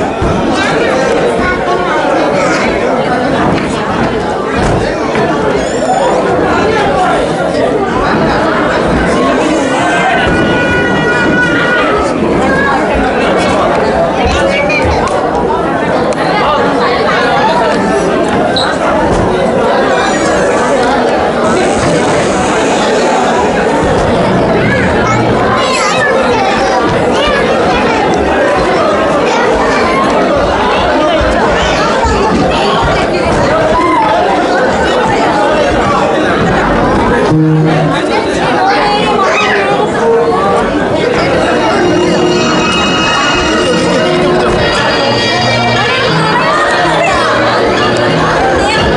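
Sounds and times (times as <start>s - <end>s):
hubbub of overlapping conversation: 0.0s - 48.9s
people talking at once: 0.0s - 48.9s
short steady pitched tone: 37.2s - 38.1s, 41.5s - 47.0s.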